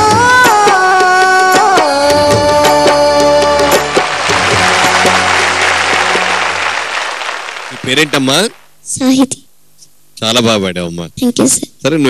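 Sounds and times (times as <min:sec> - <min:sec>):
applause: 0:03.6 - 0:08.8
held musical note: 0:03.8 - 0:08.0.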